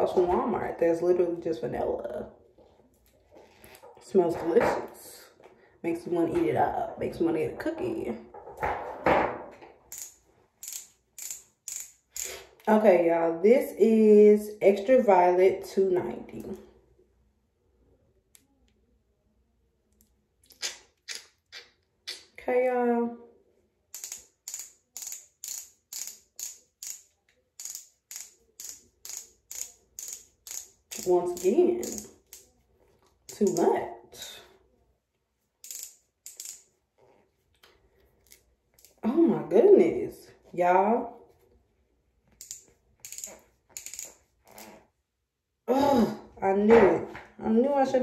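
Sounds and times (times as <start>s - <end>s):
ratcheting clicks of twist pen: 9.9s - 12.4s, 23.9s - 32.5s, 33.3s - 33.8s, 35.6s - 36.7s, 38.2s - 39.0s, 42.3s - 44.8s.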